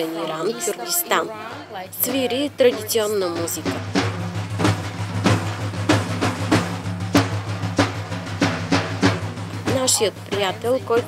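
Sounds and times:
frame drums struck by hand: 0:00.0 - 0:11.0.

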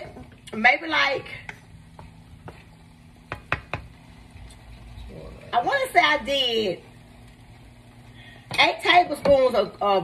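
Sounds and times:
low steady hum: 0:00.0 - 0:10.0
wooden spoon stirring in a pan: 0:01.5 - 0:03.9
spoon tapping pan: 0:01.5 - 0:04.0.

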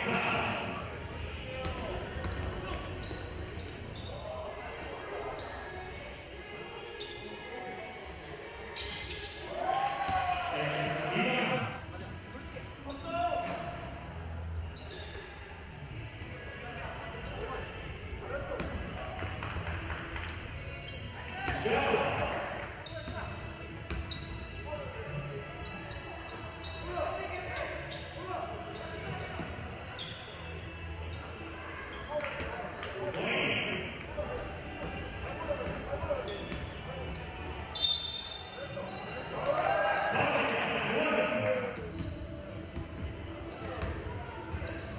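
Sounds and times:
sneaker squeaks: 0:01.6 - 0:06.0, 0:06.8 - 0:07.8, 0:08.6 - 0:10.5, 0:11.1 - 0:17.8, 0:18.4 - 0:39.5, 0:40.2 - 0:44.9
players shouting: 0:09.5 - 0:11.8, 0:21.4 - 0:22.6, 0:39.3 - 0:41.8
voices calling out: 0:33.0 - 0:44.9.

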